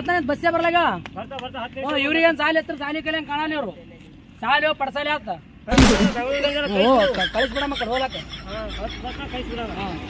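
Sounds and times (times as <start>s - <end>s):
loud sharp bang: 5.7s - 6.3s.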